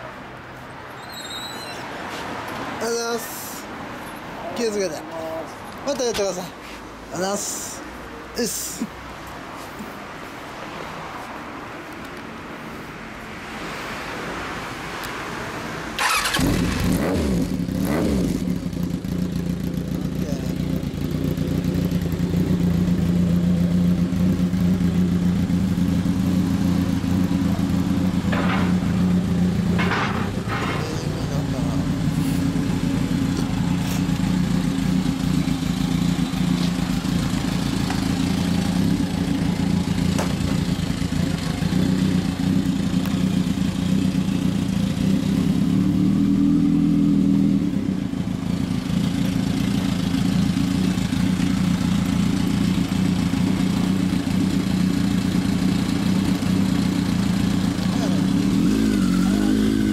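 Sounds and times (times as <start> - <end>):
motorcycle engine idling: 17.6 - 45.7, 47.8 - 58.9.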